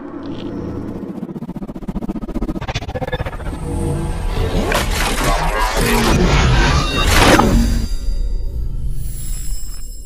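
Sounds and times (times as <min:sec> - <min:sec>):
low pulsing build-up: 0:00.0 - 0:04.6.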